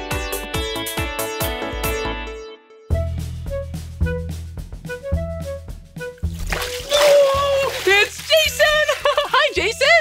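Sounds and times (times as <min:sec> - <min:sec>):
background music: 0:00.0 - 0:10.0
pool water splashing: 0:06.4 - 0:09.3.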